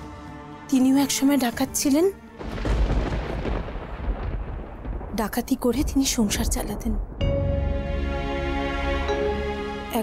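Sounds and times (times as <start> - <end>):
thunder-like rumbling boom: 2.4 - 7.3.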